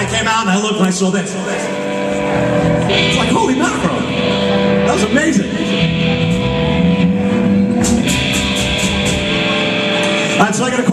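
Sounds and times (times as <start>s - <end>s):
live rock band playing: 0.0s - 10.9s.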